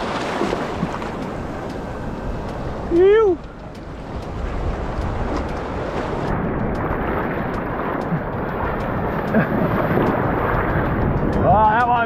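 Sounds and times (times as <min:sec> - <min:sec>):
surf washing and splashing: 0:00.0 - 0:12.0
wind on microphone: 0:00.0 - 0:12.0.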